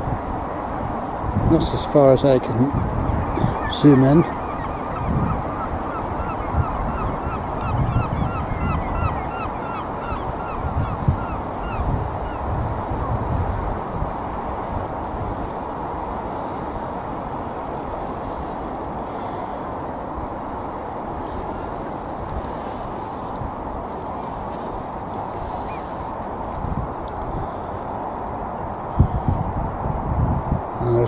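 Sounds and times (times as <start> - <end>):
wind noise on microphone: 0.0 - 31.0
birds calling: 1.5 - 29.4.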